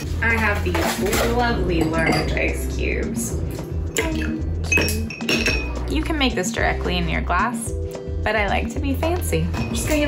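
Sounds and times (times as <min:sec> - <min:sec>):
glassy ring: 0:04.6 - 0:05.8.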